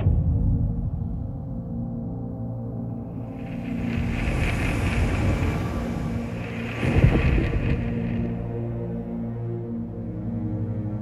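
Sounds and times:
sustained musical drone: 0.0 - 11.0
rushing rumbling noise: 3.0 - 9.0.

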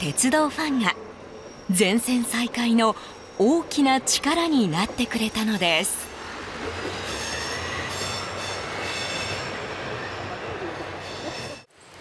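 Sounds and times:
diesel railcar rumble: 0.0 - 12.0
wheel squeal: 6.9 - 11.7.

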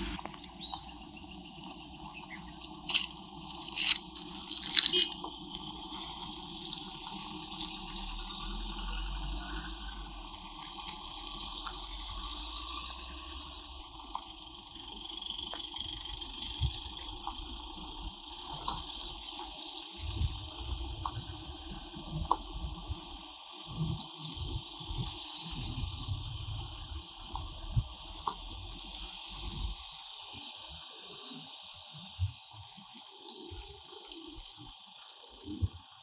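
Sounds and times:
cars engine rumble: 0.0 - 36.0.

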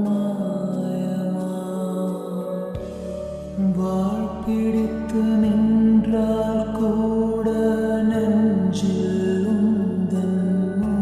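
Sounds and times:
steady bass: 2.8 - 11.0.

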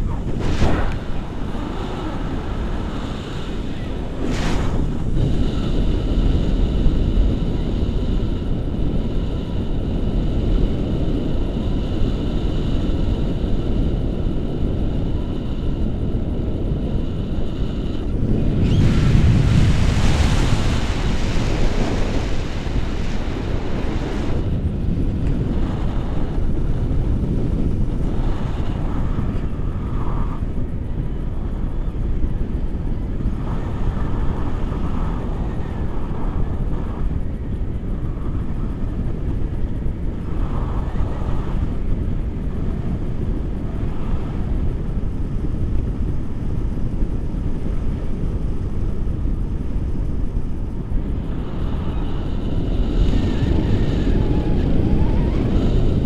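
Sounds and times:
wind rushing over microphone: 0.0 - 56.0.

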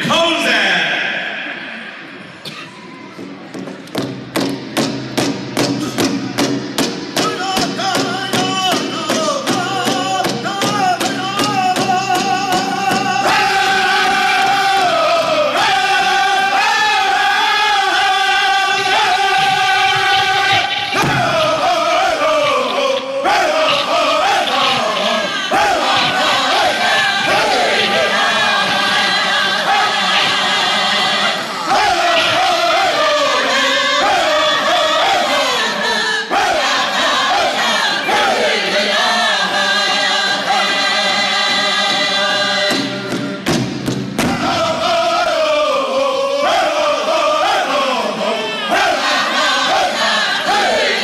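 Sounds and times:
large drum beaten with sticks: 3.2 - 14.8, 18.7 - 22.6, 42.7 - 45.1
men singing: 7.2 - 43.1, 44.3 - 51.0.

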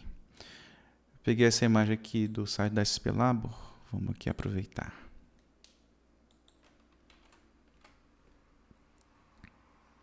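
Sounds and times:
faint keyboard keystrokes: 5.6 - 8.0.

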